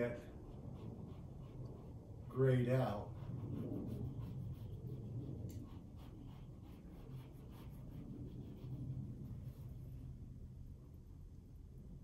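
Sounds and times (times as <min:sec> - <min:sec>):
paint stick scratchy strokes: 0:00.0 - 0:10.2.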